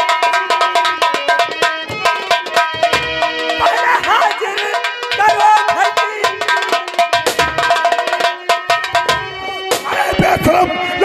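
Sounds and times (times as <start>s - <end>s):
rapid drumming: 0.0s - 10.6s
held melodic notes: 0.0s - 11.0s.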